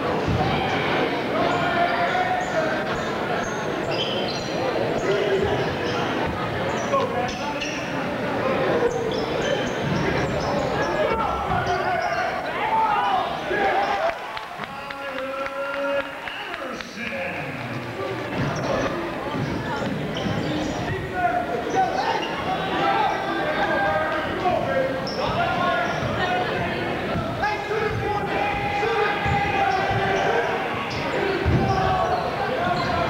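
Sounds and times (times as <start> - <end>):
players and spectators voices: 0.0 - 33.0.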